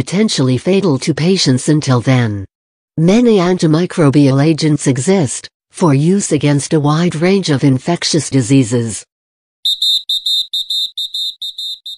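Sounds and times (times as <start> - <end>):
rapid high-pitched electronic beeping: 9.7 - 11.9.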